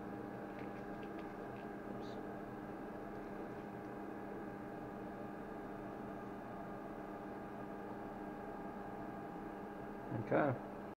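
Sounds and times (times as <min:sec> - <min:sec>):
steady machine hum: 0:00.0 - 0:10.9.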